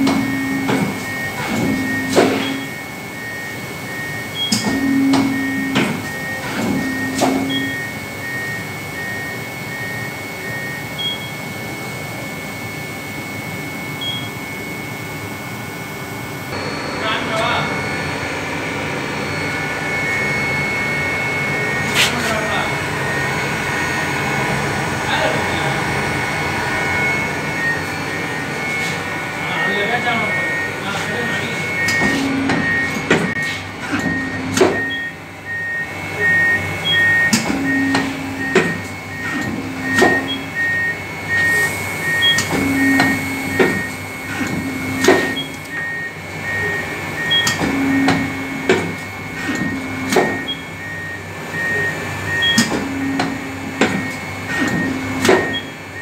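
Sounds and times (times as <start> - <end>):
paper cutter humming: 0.0 - 12.7, 15.5 - 56.0
repeating high pulsed tone: 16.6 - 33.4.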